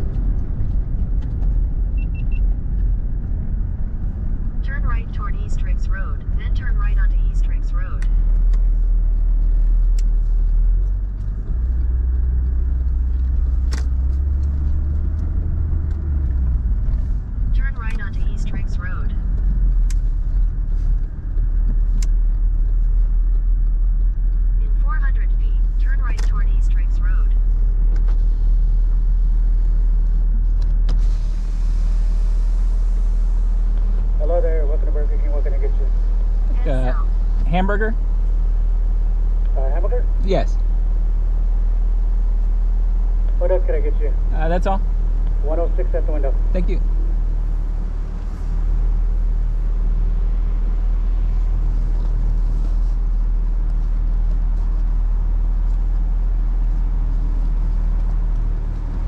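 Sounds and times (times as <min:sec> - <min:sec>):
car engine rumbling: 0:00.0 - 0:59.0
indistinct voices: 0:36.5 - 0:38.0.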